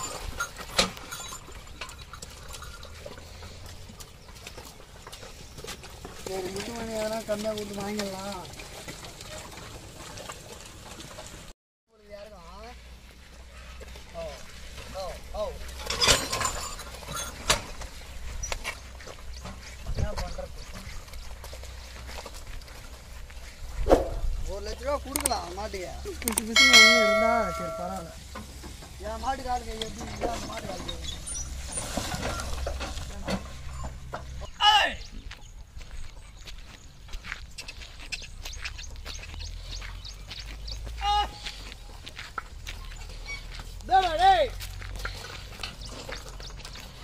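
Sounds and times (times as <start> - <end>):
cart knocking and clattering: 0.0 - 11.5, 13.8 - 34.8, 37.5 - 47.0
hooves in mud: 0.0 - 47.0
cart knocks: 14.8 - 18.4, 26.6 - 34.5
man calling out: 34.6 - 35.0, 41.0 - 41.5, 43.8 - 44.6
person calling: 41.0 - 41.6.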